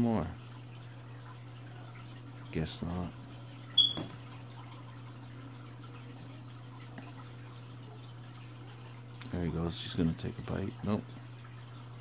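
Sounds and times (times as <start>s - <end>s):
aquarium filter hum: 0.0s - 12.0s
water trickling: 0.0s - 12.0s.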